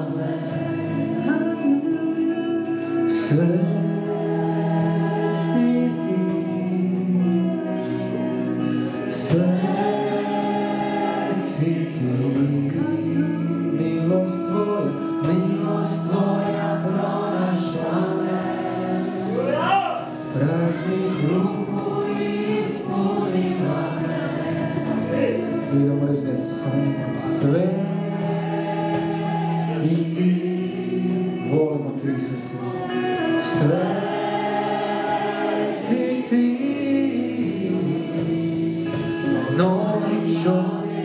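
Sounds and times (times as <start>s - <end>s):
band accompaniment: 0.0s - 41.0s
voices singing chant-like notes: 0.0s - 41.0s.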